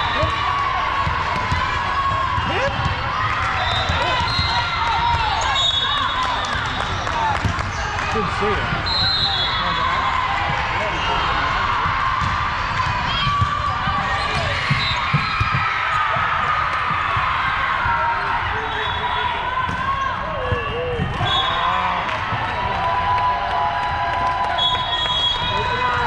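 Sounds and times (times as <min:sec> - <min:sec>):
hubbub of voices: 0:00.0 - 0:26.0
volleyballs hit and bouncing: 0:00.2 - 0:05.6, 0:06.3 - 0:08.8, 0:10.3 - 0:18.7, 0:19.5 - 0:23.4
sneakers squeaking on floor: 0:14.0 - 0:16.2.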